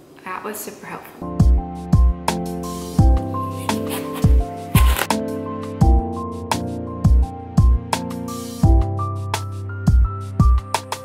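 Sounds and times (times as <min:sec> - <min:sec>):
background music with steady beat: 0:01.2 - 0:11.0
knife crunching through watermelon rind: 0:03.6 - 0:05.1.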